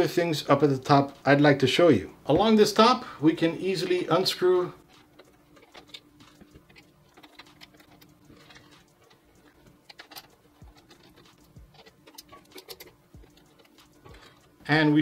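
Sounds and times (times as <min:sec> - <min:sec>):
faint steady hum: 0:00.0 - 0:15.0
screwdriver clicking and scraping metal: 0:04.8 - 0:14.6.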